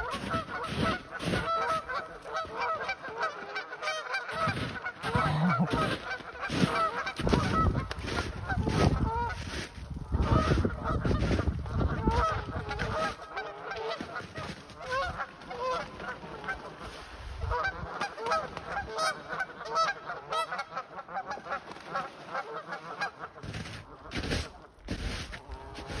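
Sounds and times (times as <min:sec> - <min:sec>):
geese honking: 0:00.0 - 0:26.0.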